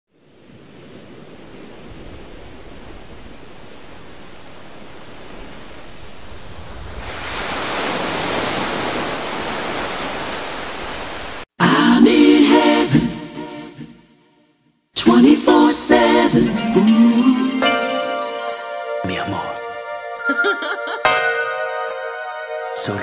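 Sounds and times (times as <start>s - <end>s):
surf washing onto beach: 0.2s - 11.5s
music with voices: 11.6s - 13.9s, 15.0s - 23.0s.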